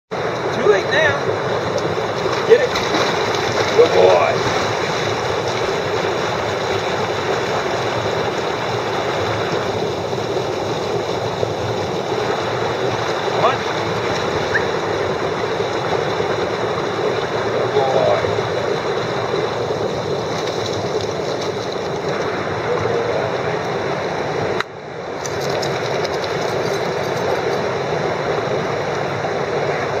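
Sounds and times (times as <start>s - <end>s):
stream rushing over rocks: 0.2s - 30.0s.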